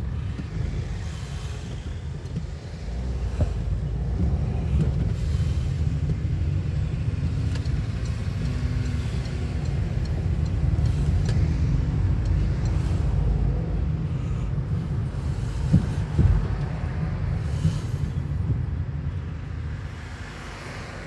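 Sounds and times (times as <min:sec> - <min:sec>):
car road and engine rumble: 0:00.0 - 0:21.0.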